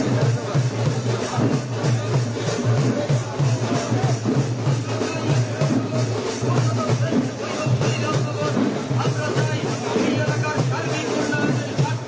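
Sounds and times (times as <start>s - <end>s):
music with quick drum beat: 0.0s - 12.0s.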